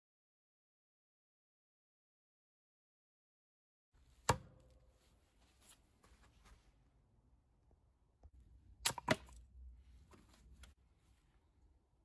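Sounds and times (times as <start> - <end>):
faint handling noise: 4.0 - 7.0, 9.3 - 11.7.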